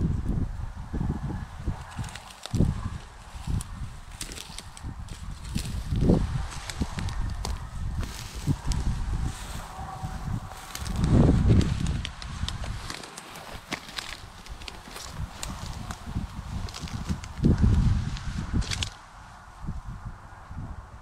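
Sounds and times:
grass brushing: 1.8 - 18.9.

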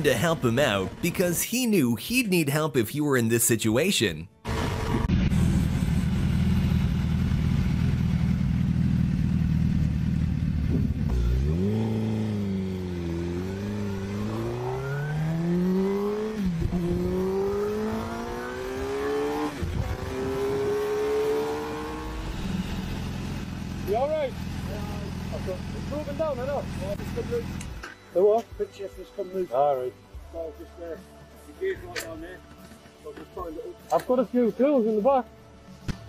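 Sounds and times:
motorcycle engine accelerating: 4.4 - 27.8.

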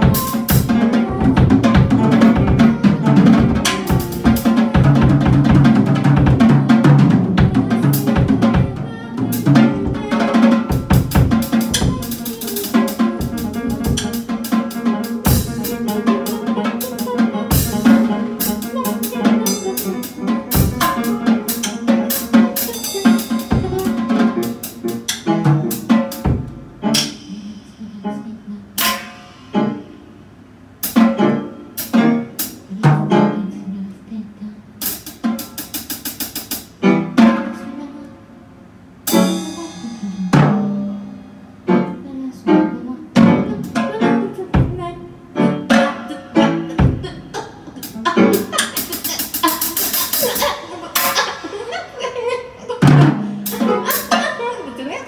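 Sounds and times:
drum kit irregular hits: 0.0 - 27.9, 28.8 - 33.4, 34.8 - 37.8, 38.8 - 42.0, 43.1 - 51.7, 52.8 - 54.6
piano: 0.0 - 55.0
cymbal strokes: 39.0 - 41.4.

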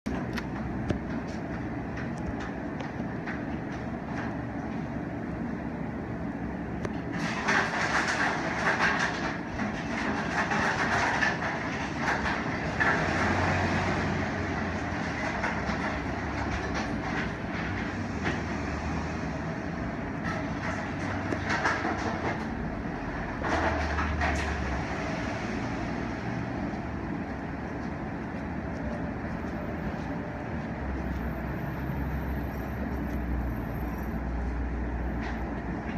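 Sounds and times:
steady rumbling: 0.1 - 35.9.

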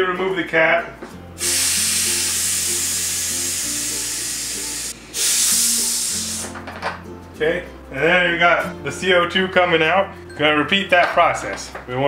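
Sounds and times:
gas hissing from bottle: 1.4 - 6.7.

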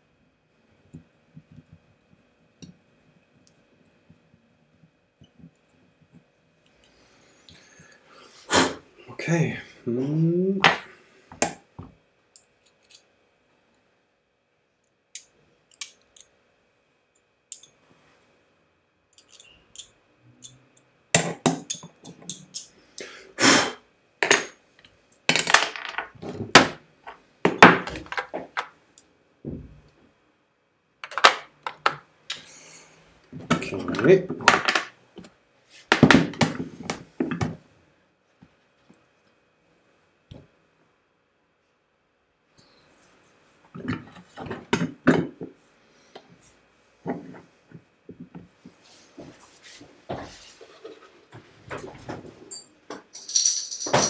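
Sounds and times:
tools clicking and clinking on workbench: 17.5 - 17.8, 19.1 - 22.8, 52.5 - 54.0.

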